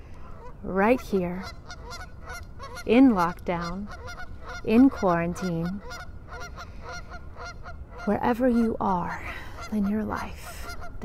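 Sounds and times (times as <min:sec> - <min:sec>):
geese honking: 0:00.1 - 0:11.0.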